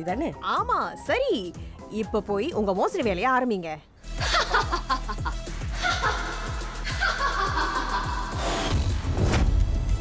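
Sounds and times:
woman laughing: 4.2s - 8.4s.

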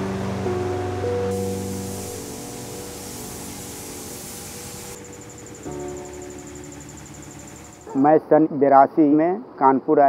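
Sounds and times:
faint music: 0.0s - 9.1s
steady workshop hiss: 0.8s - 9.7s.

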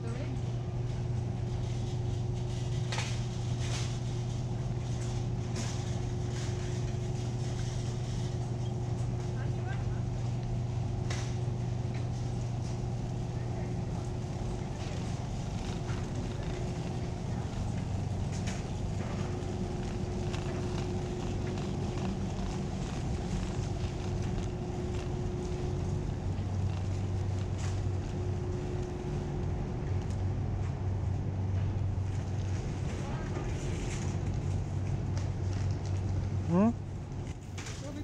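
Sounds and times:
low store hum: 0.0s - 38.0s
sharp clicks and rattles: 14.2s - 29.0s.

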